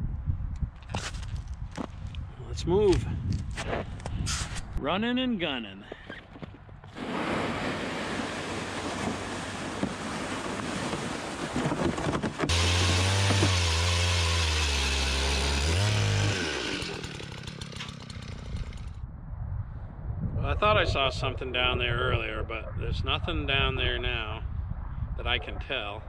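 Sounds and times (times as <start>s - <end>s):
footsteps crunching over snow: 0.8s - 2.1s
sled dragging over snow: 7.0s - 13.5s
power ice auger drilling: 11.7s - 19.0s.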